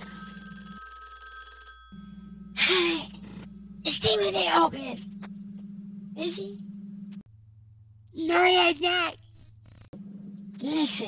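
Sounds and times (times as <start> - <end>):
telephone ringing tone: 0.0 - 3.9.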